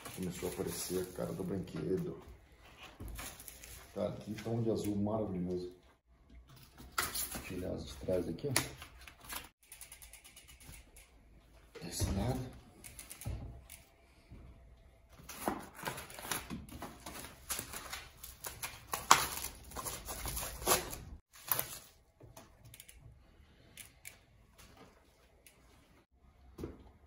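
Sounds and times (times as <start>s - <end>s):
plastic wrap crinkling: 0.0s - 1.7s.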